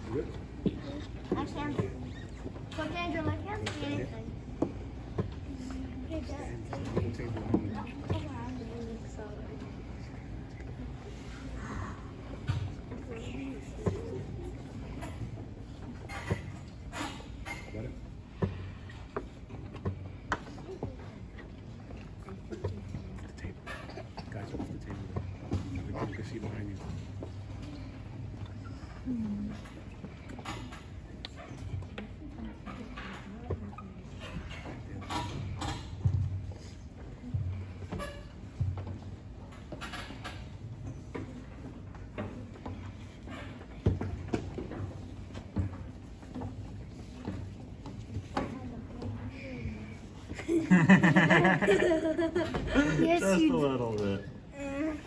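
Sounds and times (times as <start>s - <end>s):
murmur of children's voices: 0.0s - 17.5s.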